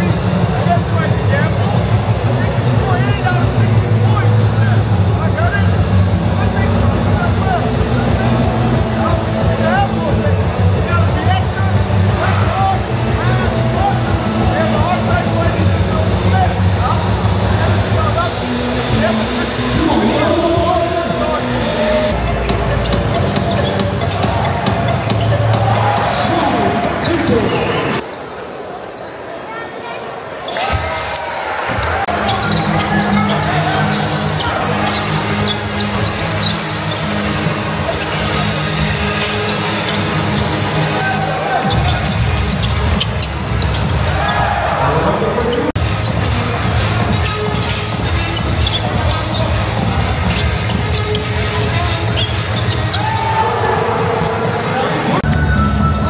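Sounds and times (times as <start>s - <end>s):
crowd chatter: 0.0s - 56.0s
sneakers squeaking: 18.4s - 28.0s, 28.8s - 29.5s, 30.2s - 56.0s
basketball in play: 22.5s - 28.0s, 30.3s - 37.1s, 41.6s - 46.3s, 47.1s - 55.2s.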